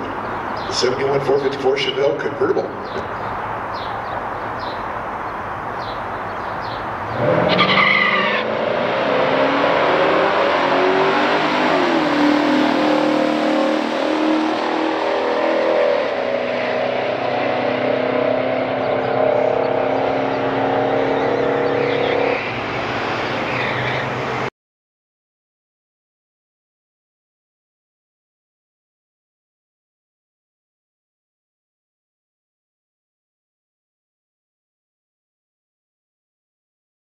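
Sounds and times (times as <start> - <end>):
cars racing at full throttle: 0.0 - 24.5.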